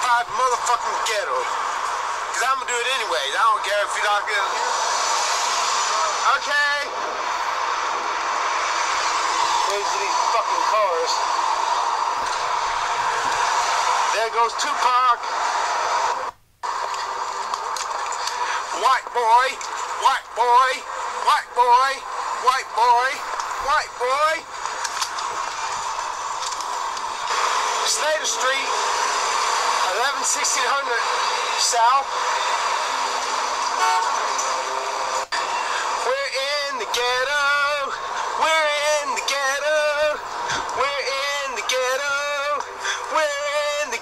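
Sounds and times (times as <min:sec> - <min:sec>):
steady rushing noise: 0:00.0 - 0:44.0.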